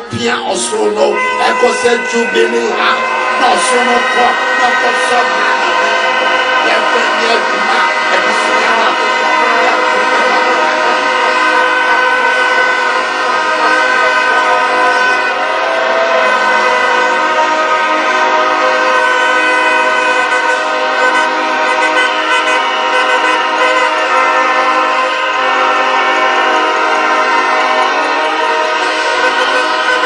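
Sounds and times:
many horns blowing: 0.0s - 30.0s.

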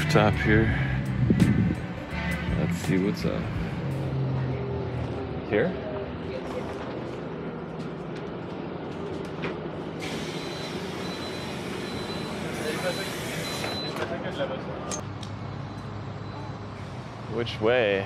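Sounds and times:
bus engine running: 0.0s - 17.8s
compressed air hiss: 10.0s - 13.5s
steady high beep: 10.3s - 14.0s.

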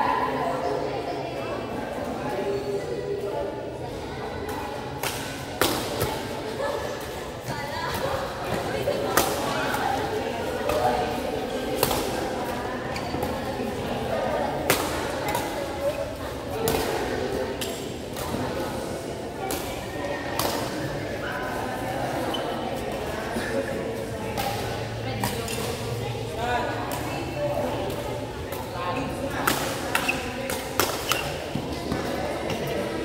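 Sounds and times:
racket hitting shuttlecock: 29.4s - 32.6s.

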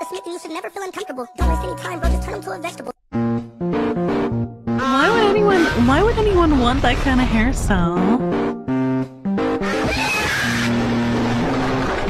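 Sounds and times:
background music: 0.0s - 7.0s, 7.6s - 12.0s.

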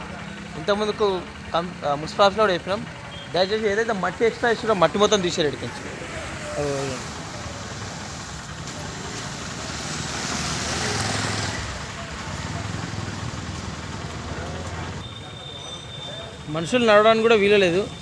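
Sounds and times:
motorcycle passing through mud: 5.8s - 15.1s.

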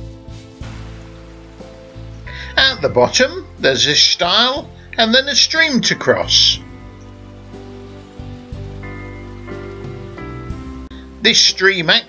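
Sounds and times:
soft instrumental chords: 0.0s - 11.4s
running water hiss: 0.0s - 12.0s.

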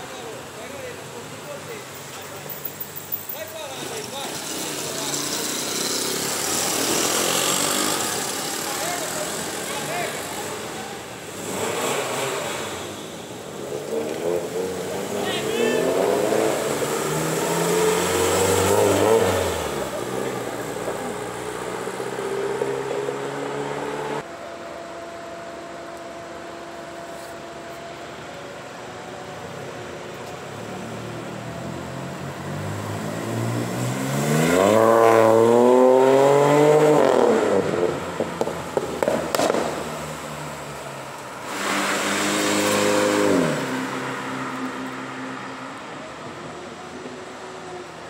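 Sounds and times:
voices talking: 0.0s - 11.4s, 14.0s - 16.6s.

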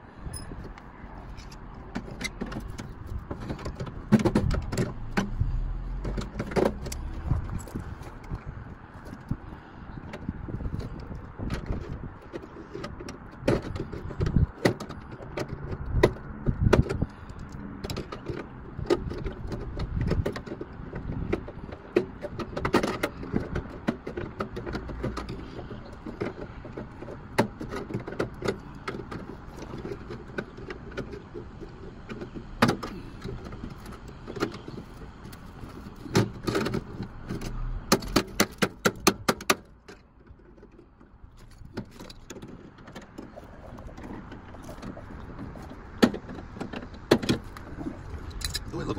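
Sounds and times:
knocks and clanks on metal: 1.9s - 7.5s, 17.8s - 48.7s.

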